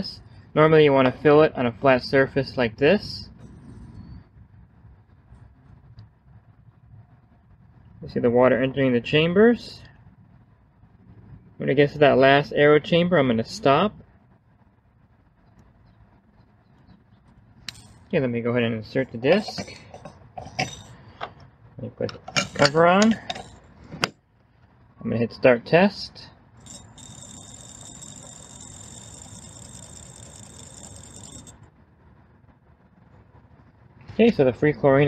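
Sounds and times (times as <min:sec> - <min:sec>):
high-pitched spinning whine: 0:17.7 - 0:18.2, 0:22.4 - 0:23.8, 0:26.2 - 0:31.8.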